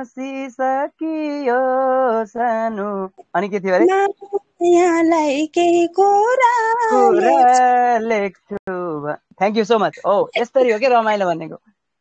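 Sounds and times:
woman singing unaccompanied: 0:03.8 - 0:08.0.

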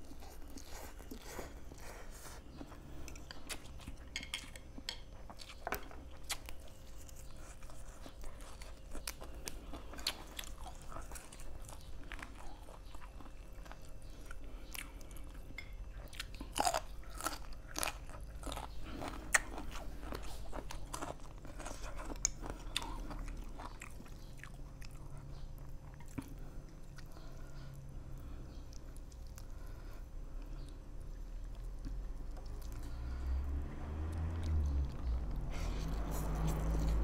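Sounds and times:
person chewing crisp vegetables: 0:00.0 - 0:37.0.

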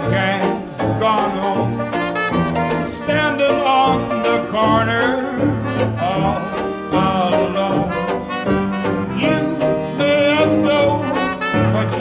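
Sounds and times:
banjo rhythm: 0:00.0 - 0:12.0
brass melody: 0:00.0 - 0:12.0.

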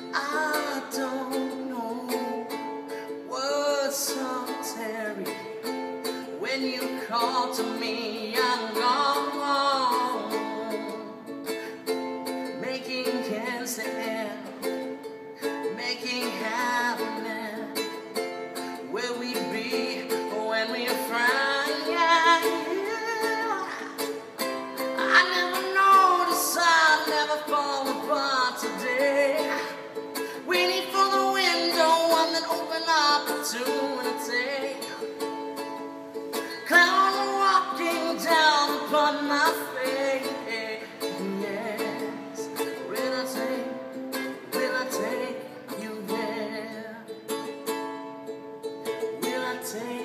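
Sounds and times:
man singing: 0:00.0 - 0:35.7, 0:36.3 - 0:47.5, 0:48.8 - 0:50.0
ukulele strumming chords: 0:00.0 - 0:50.0.

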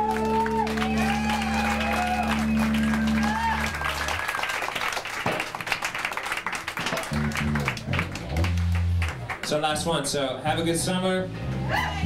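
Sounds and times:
rock band final chord: 0:00.0 - 0:04.1
low bass or guitar notes: 0:00.0 - 0:04.2, 0:07.1 - 0:09.9, 0:10.5 - 0:12.0
audience clapping and cheering: 0:00.0 - 0:10.0.

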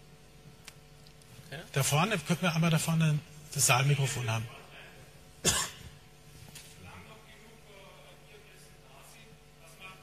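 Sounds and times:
person coughing: 0:05.4 - 0:06.0.

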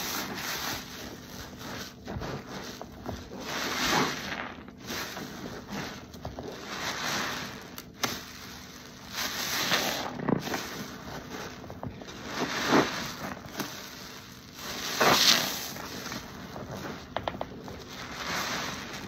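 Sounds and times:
sponge squelching in soapy water: 0:00.0 - 0:19.0.

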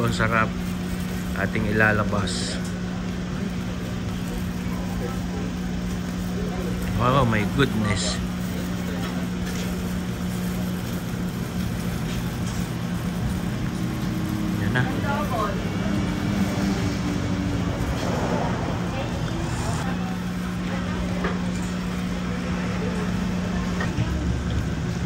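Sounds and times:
indistinct voices: 0:13.9 - 0:25.0.

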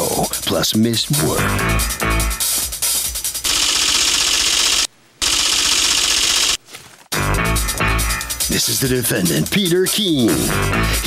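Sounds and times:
loud rapid rattling: 0:03.4 - 0:06.6.

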